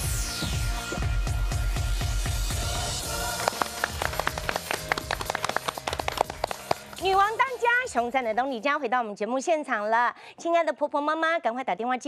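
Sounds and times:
people clapping: 0:02.8 - 0:07.7.

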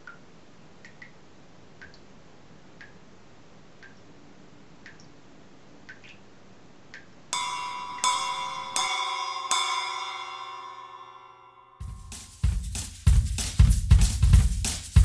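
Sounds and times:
chiming bell-like music: 0:07.4 - 0:12.3.

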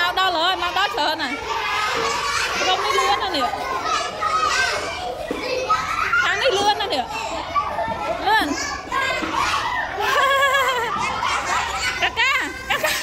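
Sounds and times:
children's excited cries: 0:00.0 - 0:13.0
young children chattering: 0:00.0 - 0:13.0.

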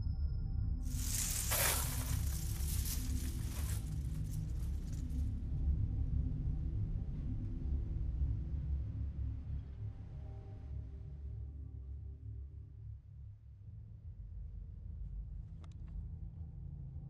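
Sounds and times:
low steady drone: 0:00.0 - 0:17.0
bead curtain rattling: 0:00.9 - 0:04.4.

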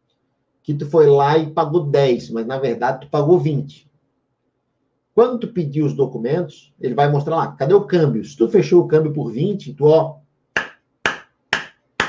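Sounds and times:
hands clapping: 0:10.6 - 0:11.8.

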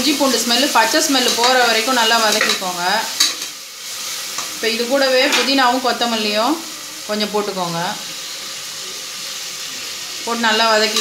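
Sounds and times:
masala sizzling in a pot: 0:00.0 - 0:11.0.

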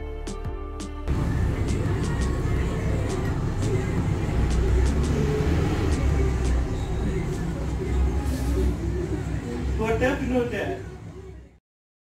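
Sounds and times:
low rumble: 0:01.1 - 0:09.8
faint voices: 0:01.2 - 0:11.6.

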